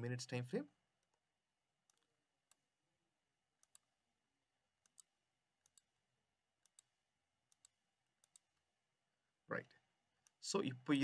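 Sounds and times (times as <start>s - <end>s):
computer mouse clicking: 1.8s - 2.6s, 3.6s - 3.9s, 4.8s - 5.9s, 6.6s - 6.9s, 7.5s - 8.6s.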